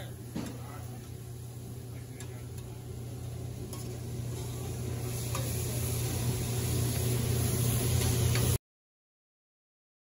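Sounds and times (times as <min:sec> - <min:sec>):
steady low hum: 0:00.0 - 0:08.6
vegetables sizzling on a griddle: 0:00.1 - 0:08.6
spatula stirring on griddle: 0:02.2 - 0:08.6.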